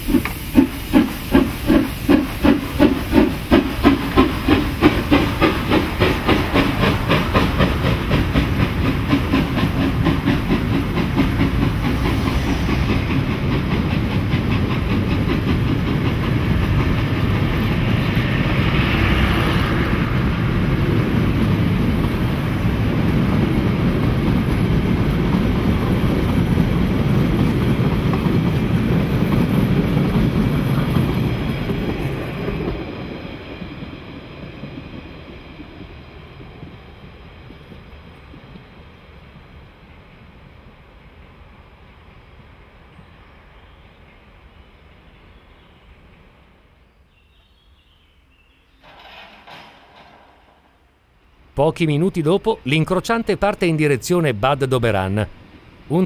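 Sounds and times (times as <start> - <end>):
steam locomotive exhaust beats: 0.0 - 43.0
train carriages clattering on rails: 0.1 - 38.6, 48.7 - 51.0.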